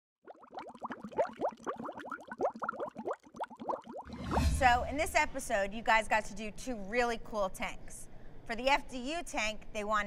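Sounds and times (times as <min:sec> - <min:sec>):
underwater bubbles: 0:00.2 - 0:04.4.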